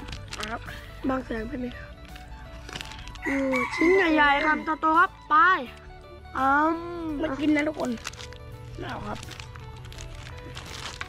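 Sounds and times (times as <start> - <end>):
rooster crowing: 3.2 - 4.6.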